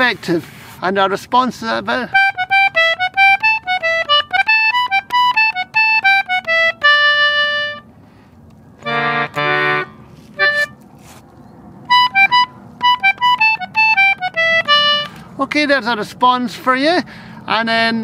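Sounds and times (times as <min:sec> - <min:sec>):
concertina playing a jig: 0:02.0 - 0:07.9, 0:08.8 - 0:10.8, 0:11.8 - 0:15.2.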